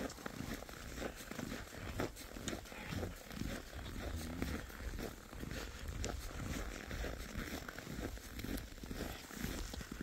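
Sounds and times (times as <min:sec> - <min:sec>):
footsteps crunching on snow: 0:00.0 - 0:10.0
low growl: 0:02.5 - 0:04.9.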